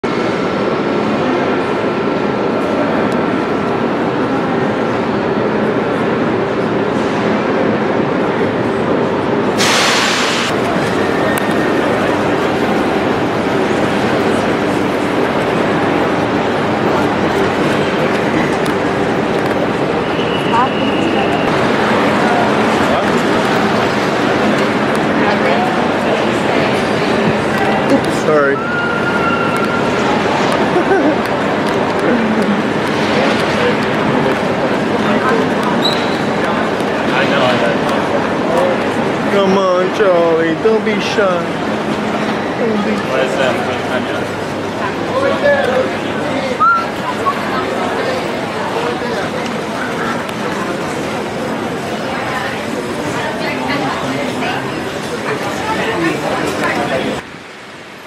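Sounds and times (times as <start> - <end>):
crowd chatter: 0.0 - 58.0
short loud hiss: 9.6 - 10.6.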